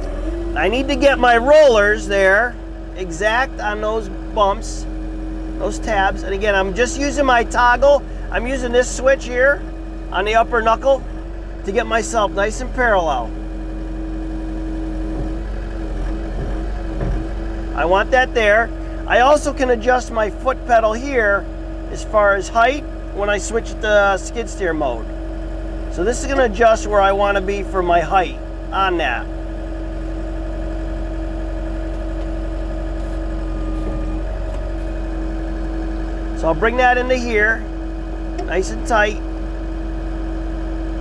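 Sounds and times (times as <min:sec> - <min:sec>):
constant hydraulic whine: 0:00.0 - 0:41.0
excavator diesel engine running: 0:00.0 - 0:41.0.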